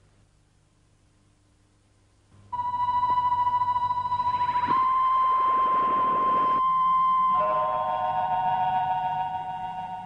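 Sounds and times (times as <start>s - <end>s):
lower synthesizer tones: 2.4s - 10.0s
high synthesizer tones: 2.6s - 10.0s.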